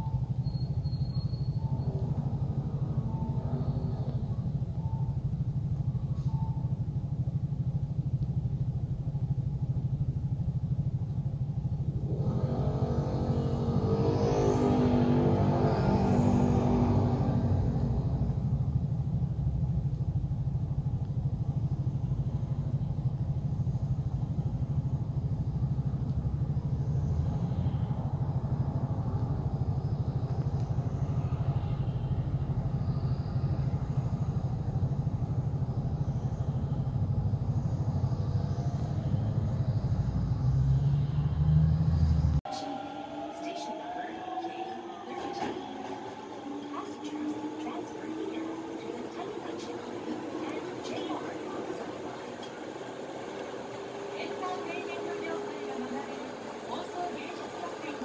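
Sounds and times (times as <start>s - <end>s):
low rumble of traffic: 0.0s - 58.0s
vehicle accelerating away: 0.0s - 58.0s.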